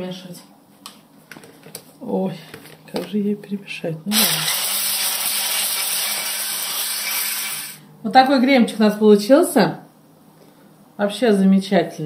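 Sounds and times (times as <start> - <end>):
electric blender whisking in metal bowl: 4.1 - 7.8.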